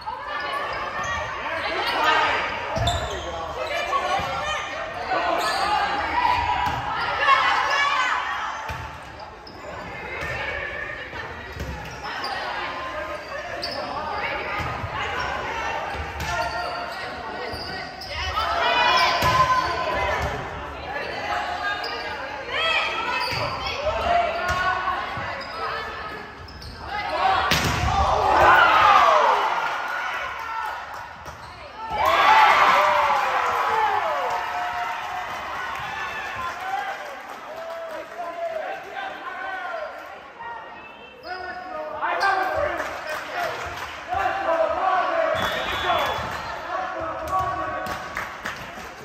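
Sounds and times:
players shouting: 0:26.9 - 0:30.8.

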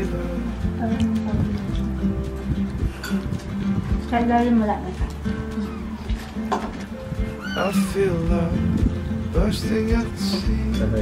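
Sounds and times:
background guitar music: 0:00.0 - 0:11.0.

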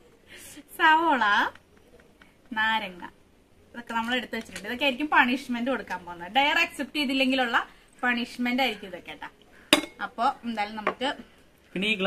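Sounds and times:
glass plate clinking: 0:09.7 - 0:10.0.

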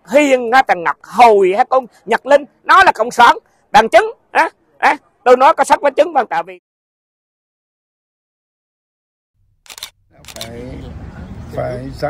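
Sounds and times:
man speaking: 0:00.0 - 0:06.6, 0:10.2 - 0:11.0.

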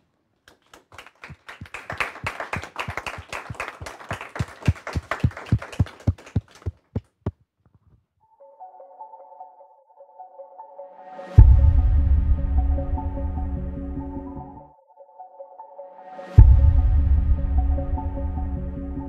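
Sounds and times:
audience applauding: 0:00.4 - 0:06.8.

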